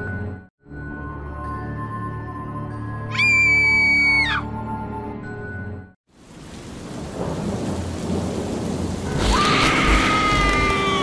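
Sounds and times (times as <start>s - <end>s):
rain hissing: 6.1s - 11.0s
thunder rumble: 6.2s - 11.0s.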